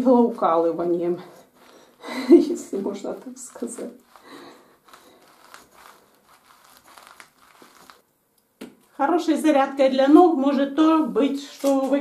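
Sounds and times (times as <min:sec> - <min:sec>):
bare feet on spiked plastic mat: 0:03.6 - 0:08.0.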